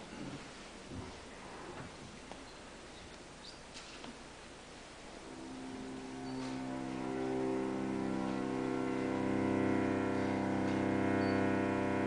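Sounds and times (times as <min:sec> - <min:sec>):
cello sustained bowed note: 0:05.2 - 0:12.0.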